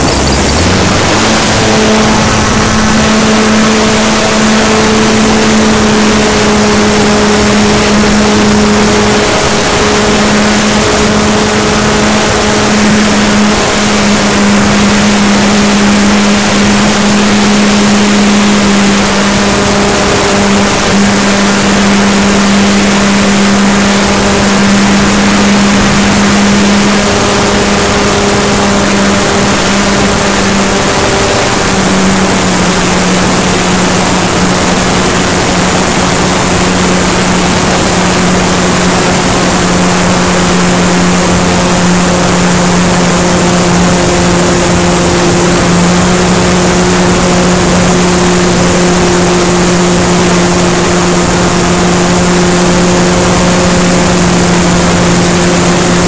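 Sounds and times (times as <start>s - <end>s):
model airplane motor drone: 0.0s - 56.0s
rush of air: 0.0s - 56.0s.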